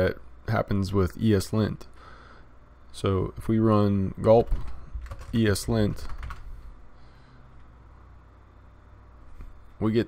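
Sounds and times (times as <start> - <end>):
faint low hum: 0.0 - 10.0
keyboard keystrokes: 4.5 - 5.4, 6.0 - 6.5.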